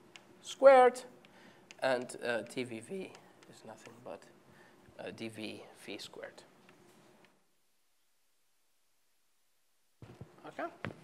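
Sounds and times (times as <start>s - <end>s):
man speaking: 1.8s - 4.4s, 5.0s - 6.5s.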